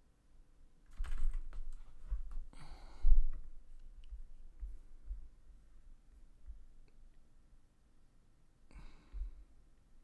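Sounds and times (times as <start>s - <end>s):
computer keyboard keystrokes: 0.9s - 1.5s.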